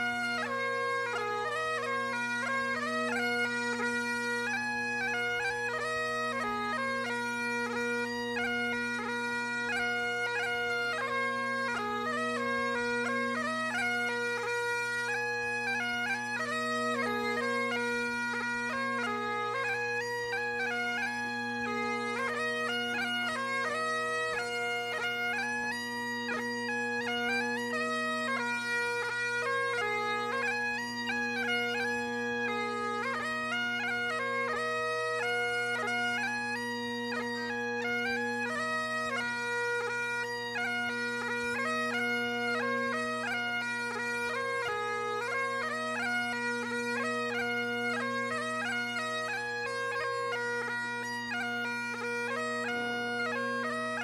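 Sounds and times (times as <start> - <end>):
bagpipes playing a marching tune: 0.0 - 54.0.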